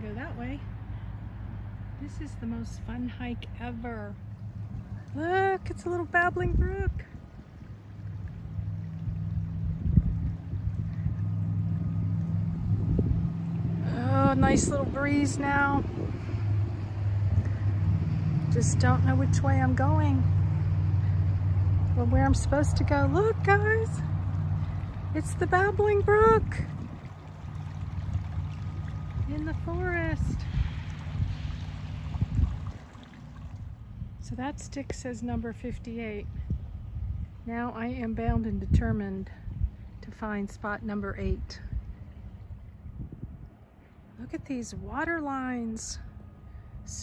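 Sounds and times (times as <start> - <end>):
wind rumbling on microphone: 0.0 - 47.0
babbling brook: 22.3 - 33.5.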